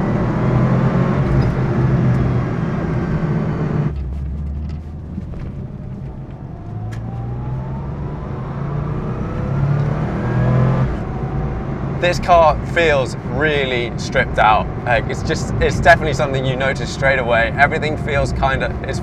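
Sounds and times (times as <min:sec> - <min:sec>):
car engine under load: 0:00.0 - 0:19.0.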